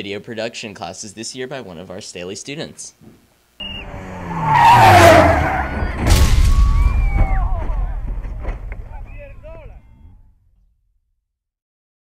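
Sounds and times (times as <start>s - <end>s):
rally car engine passing: 3.6s - 6.2s
tyres skidding on gravel: 3.8s - 9.2s.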